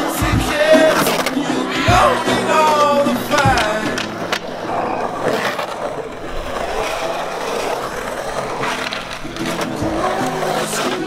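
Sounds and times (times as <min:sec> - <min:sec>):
skateboard wheels rolling on concrete: 0:00.0 - 0:11.0.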